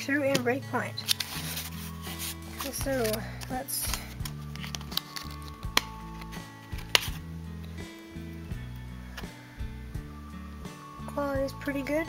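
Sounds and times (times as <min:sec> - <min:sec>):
background music with low notes: 0:00.0 - 0:12.0
plastic packaging clicks: 0:02.6 - 0:07.2.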